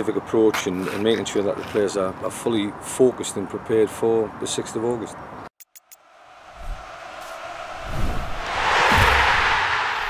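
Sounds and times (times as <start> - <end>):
crowd roar: 6.1 - 10.0.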